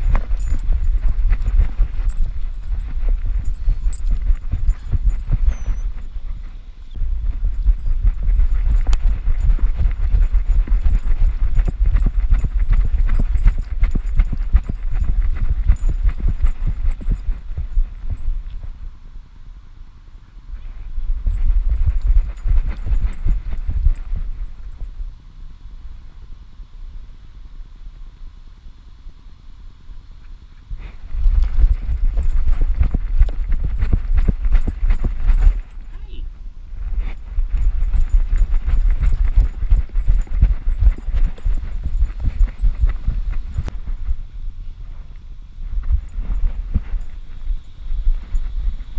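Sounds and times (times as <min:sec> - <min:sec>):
dog running footfalls: 0:00.0 - 0:06.1, 0:07.2 - 0:18.5, 0:21.2 - 0:24.7, 0:31.1 - 0:35.9, 0:36.9 - 0:44.0
wind rumble on microphone: 0:00.0 - 0:19.6, 0:20.4 - 0:25.2, 0:30.6 - 0:48.9.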